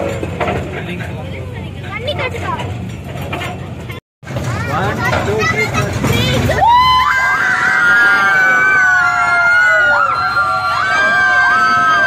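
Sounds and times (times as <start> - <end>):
group of people screaming: 6.5 - 12.0.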